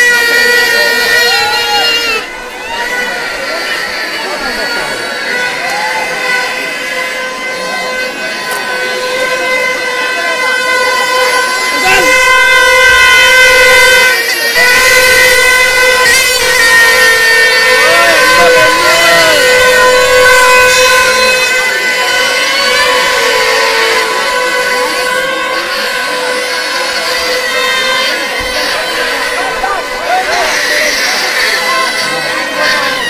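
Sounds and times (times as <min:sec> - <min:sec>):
people shouting: 0:00.0 - 0:33.0
plastic toy horns blowing: 0:00.0 - 0:33.0.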